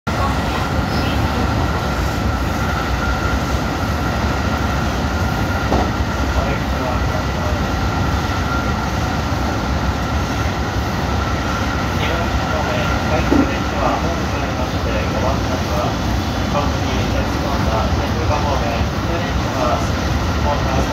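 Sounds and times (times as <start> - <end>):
train wheels rumbling on rail: 0.1 - 20.9.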